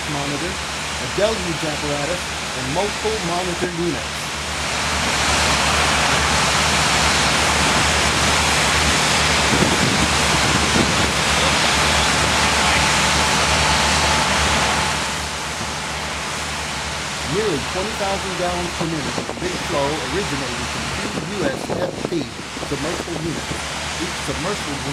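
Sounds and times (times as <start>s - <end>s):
pump engine drone: 0.0s - 24.9s
water streams rushing and spraying: 0.0s - 24.9s.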